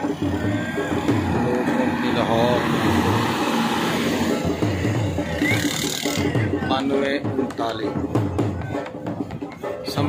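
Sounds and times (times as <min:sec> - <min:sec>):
bus diesel engine passing: 0:00.0 - 0:06.1.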